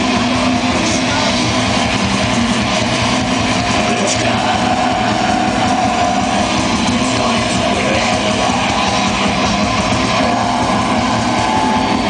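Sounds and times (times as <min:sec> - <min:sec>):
distorted electric guitars: 0:00.0 - 0:12.0
drums: 0:00.0 - 0:12.0
extreme metal band playing live: 0:00.0 - 0:12.0.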